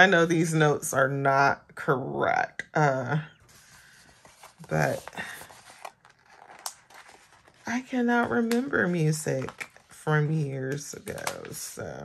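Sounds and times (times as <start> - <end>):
paper rustling: 3.4 - 10.1, 10.7 - 11.8.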